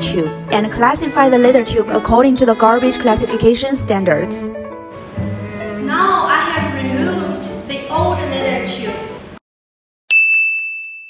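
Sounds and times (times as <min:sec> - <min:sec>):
background music: 0:00.0 - 0:09.4
bright bell-like ding: 0:10.1 - 0:11.0.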